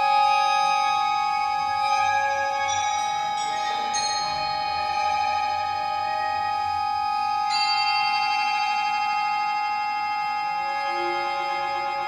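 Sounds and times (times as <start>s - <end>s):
high ringing tone: 0.0s - 12.0s
panflute: 0.0s - 12.0s
percussion: 0.0s - 12.0s
recorder: 0.0s - 12.0s.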